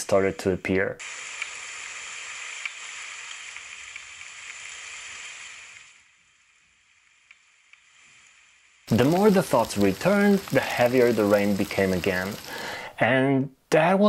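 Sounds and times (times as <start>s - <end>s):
heavy rain hiss: 1.0s - 13.0s.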